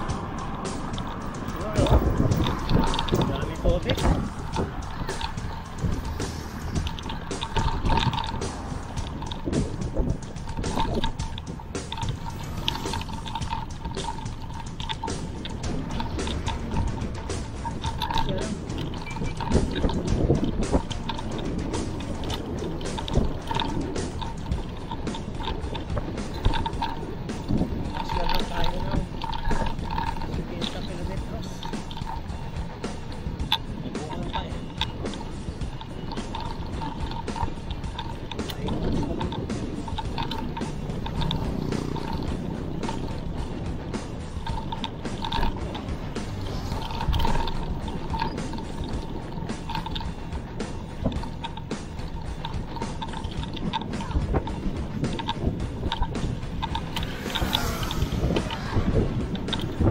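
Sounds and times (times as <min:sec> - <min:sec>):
bike clicks and rattles: 0:00.0 - 0:59.9
wind buffeting microphone: 0:00.0 - 0:59.9.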